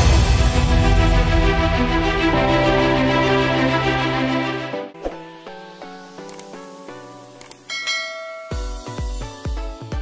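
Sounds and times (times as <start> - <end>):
quick clicks: 6.2 - 6.7, 7.4 - 7.7
notification bell ding: 7.7 - 9.1.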